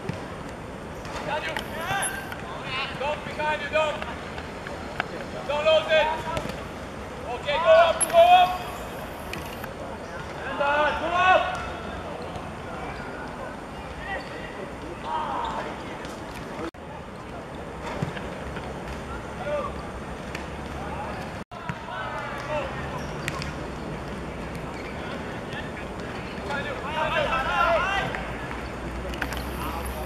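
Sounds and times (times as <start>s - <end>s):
voices shouting: 7.4s - 9.2s.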